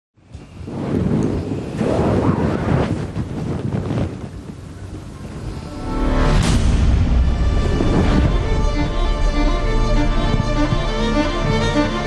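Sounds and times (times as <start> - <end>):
low rumbling soundtrack noise: 0.2 - 12.0.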